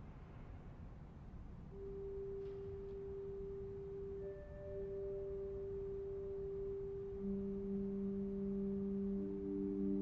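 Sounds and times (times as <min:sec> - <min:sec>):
pipe organ sustained notes: 0:01.8 - 0:10.0.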